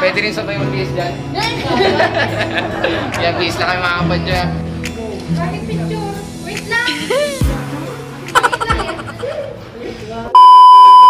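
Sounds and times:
high-pitched test-tone beep: 10.4s - 11.0s.

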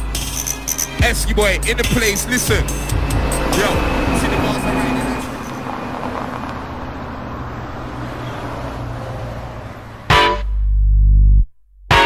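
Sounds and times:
road traffic rumble and hiss: 0.0s - 10.2s.

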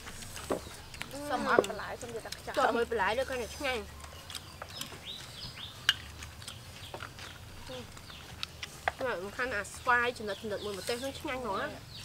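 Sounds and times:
snail shells clicking: 0.1s - 9.4s.

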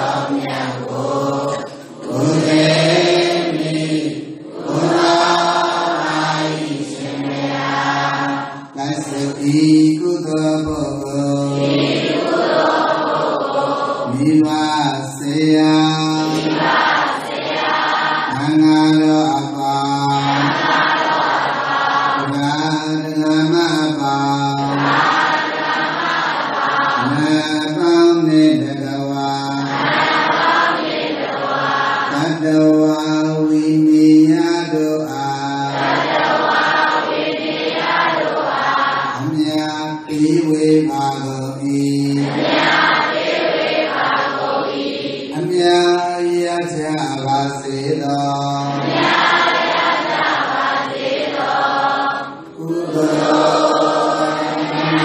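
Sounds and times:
group chanting in unison: 0.0s - 39.6s, 40.2s - 45.6s, 48.6s - 55.0s.

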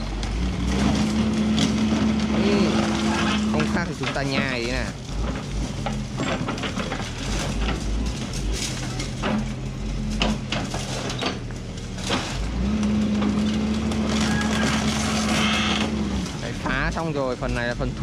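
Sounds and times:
concrete cracking and snapping: 0.0s - 17.7s
diesel engine drone: 0.0s - 18.0s.

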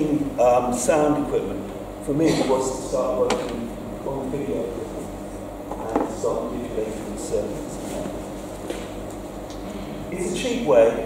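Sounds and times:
man speaking: 0.0s - 5.1s, 5.7s - 8.1s, 10.1s - 11.0s.

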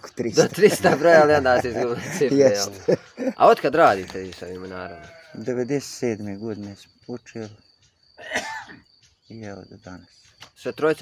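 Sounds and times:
man speaking: 0.0s - 7.6s
man clearing throat: 8.2s - 8.8s.

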